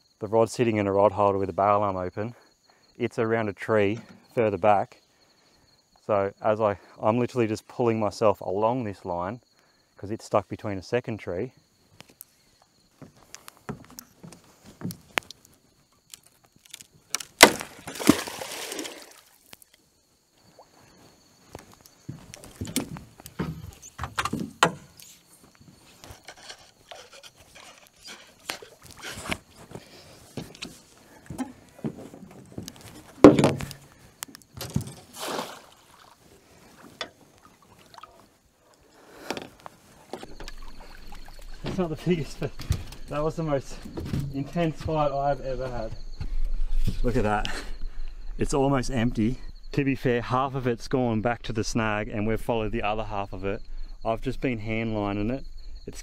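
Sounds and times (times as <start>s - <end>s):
water splashing and sloshing: 16.1s - 19.8s, 20.4s - 21.1s, 25.9s - 45.1s
knocks and clatter against boat: 22.6s - 25.0s, 30.4s - 33.8s.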